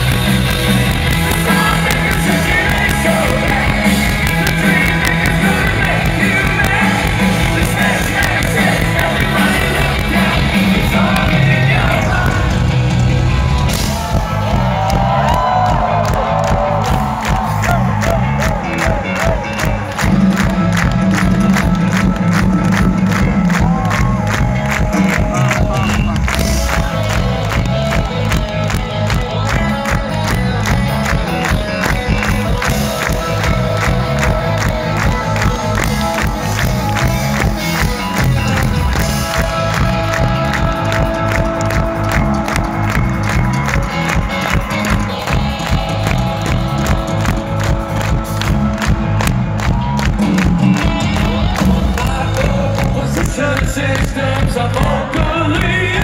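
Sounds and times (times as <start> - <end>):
crowd cheering: 0.0 - 56.0
live rock band: 0.0 - 56.0.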